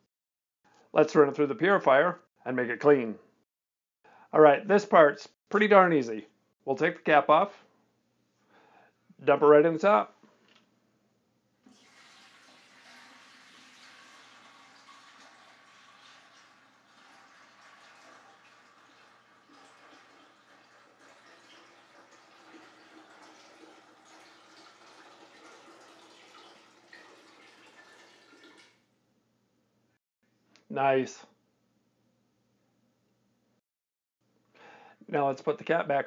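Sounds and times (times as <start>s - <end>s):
water pouring into plastic container: 11.6s - 28.8s.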